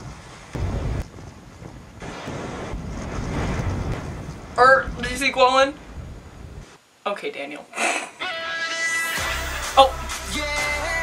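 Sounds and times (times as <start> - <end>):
rumbling whooshing fire effects: 0.0 - 6.8.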